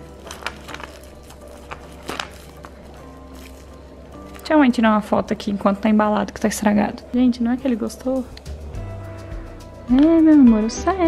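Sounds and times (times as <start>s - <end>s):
plastic wrapper rustling: 0.0s - 4.5s
soft background music: 0.0s - 11.0s.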